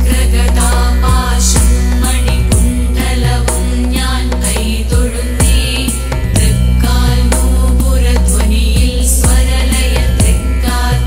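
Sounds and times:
devotional song melody: 0:00.0 - 0:11.0
low drone: 0:00.0 - 0:11.0
percussion strokes: 0:00.0 - 0:11.0.

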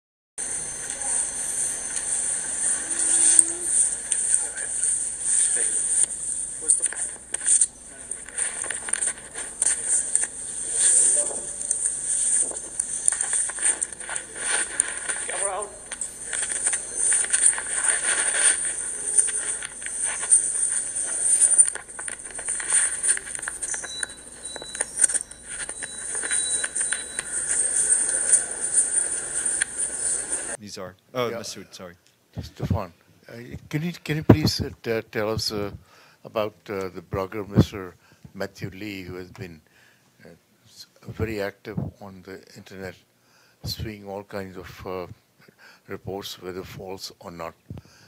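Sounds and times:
high-pitched microphone hiss: 0:00.4 - 0:39.6.

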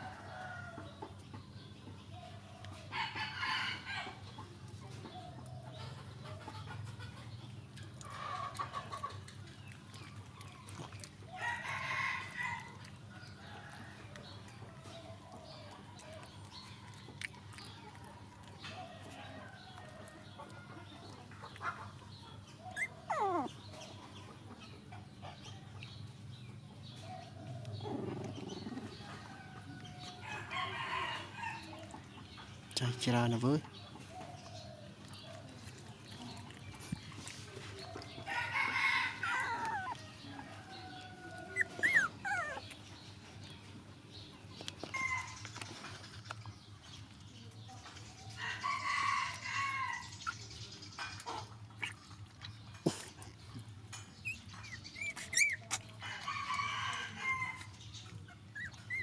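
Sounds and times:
rough animal call: 0:22.6 - 0:23.6, 0:40.8 - 0:42.7, 0:54.2 - 0:57.6
high-pitched animal squeaks: 0:22.7 - 0:23.5, 0:41.6 - 0:42.6, 0:54.2 - 0:55.9.

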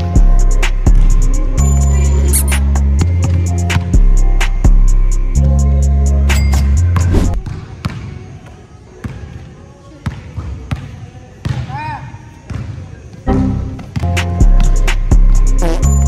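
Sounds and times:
bass-heavy background music: 0:00.0 - 0:07.4, 0:13.3 - 0:16.0
shoe squeak: 0:01.9 - 0:02.6.

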